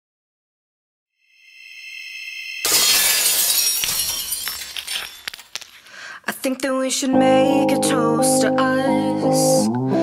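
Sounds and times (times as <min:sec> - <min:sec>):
high ringing tone: 0:01.2 - 0:02.8
glass shards tinkling: 0:02.1 - 0:05.9
glass pane shattering: 0:02.6 - 0:05.8.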